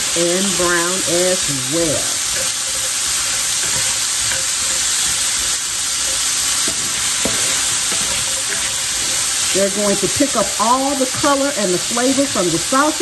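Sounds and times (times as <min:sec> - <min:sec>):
potatoes sizzling in oil: 0:00.0 - 0:13.0
wooden spatula knocking pan: 0:02.0 - 0:09.3.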